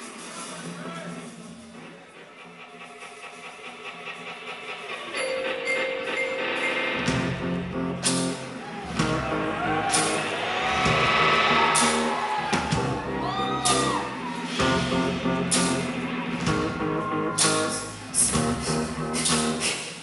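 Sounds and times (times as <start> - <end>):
cymbal crashes: 3.6 - 20.0
indie rock band playing: 4.0 - 20.0.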